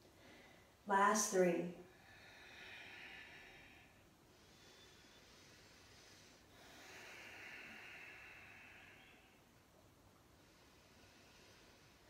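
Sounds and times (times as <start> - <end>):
faint slow breathing: 0.0 - 0.8, 1.8 - 12.0.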